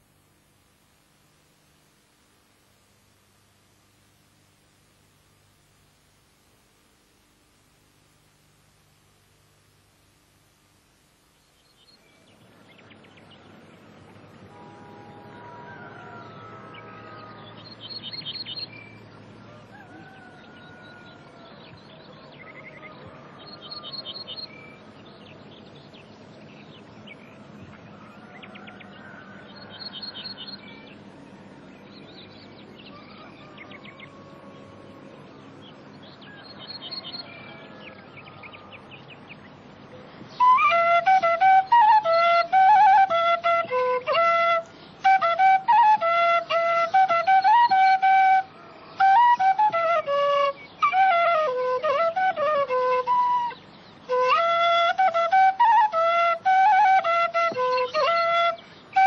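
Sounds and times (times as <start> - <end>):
whistled bird calls: 14.5 - 35.0, 35.6 - 39.3, 40.3 - 59.0.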